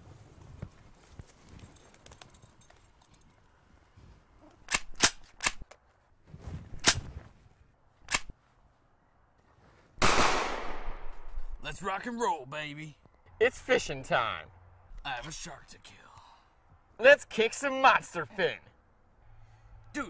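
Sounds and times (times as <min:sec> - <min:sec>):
loud gunfire burst: 0:10.0 - 0:10.9
sharp gunshot cracks: 0:10.0 - 0:11.3.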